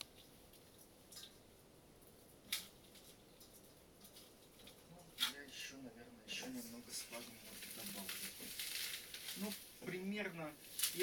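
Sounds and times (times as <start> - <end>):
hands rustling potting moss: 6.4 - 11.0.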